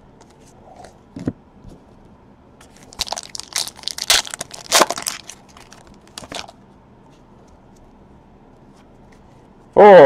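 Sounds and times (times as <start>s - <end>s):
plastic wrapper crinkling: 2.7s - 6.6s.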